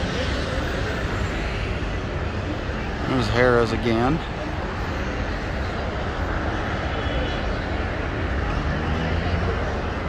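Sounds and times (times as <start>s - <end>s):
urban background rumble: 0.0s - 10.0s.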